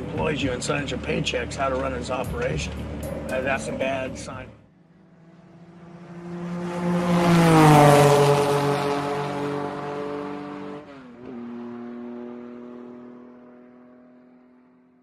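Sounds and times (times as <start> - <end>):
whoosh with droning tone: 0.0 - 9.9.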